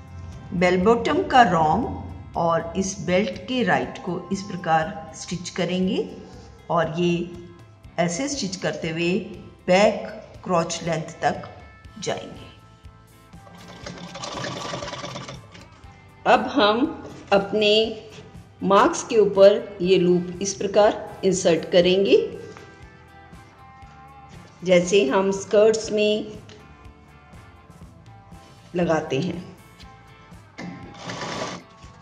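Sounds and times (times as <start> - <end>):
sewing machine running fast: 13.5 - 15.6, 30.9 - 31.7.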